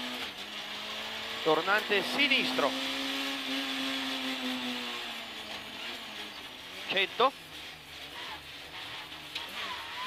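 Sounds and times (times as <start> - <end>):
rally car engine under load: 0.0 - 10.0.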